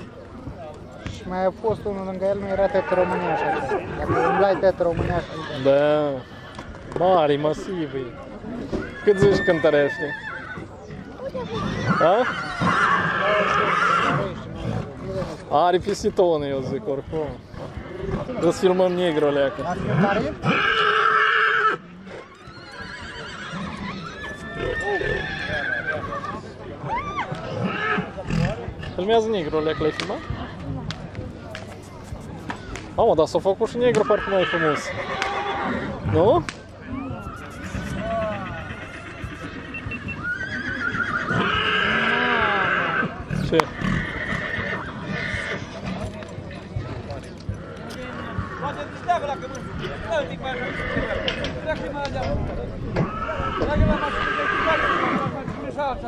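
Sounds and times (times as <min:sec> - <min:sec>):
horse whinnying: 0:02.6 - 0:06.6, 0:08.7 - 0:10.7, 0:11.4 - 0:14.3, 0:19.7 - 0:28.5, 0:34.0 - 0:36.3, 0:36.9 - 0:45.9, 0:47.8 - 0:51.7, 0:52.9 - 0:55.4.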